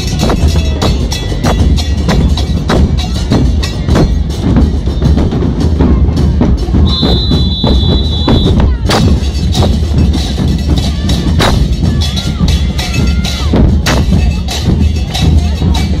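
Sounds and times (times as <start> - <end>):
bass drums with cymbals: 0.0 - 16.0.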